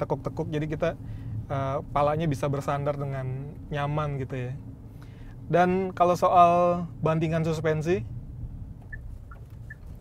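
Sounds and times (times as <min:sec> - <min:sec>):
road and engine rumble: 0:00.0 - 0:10.0.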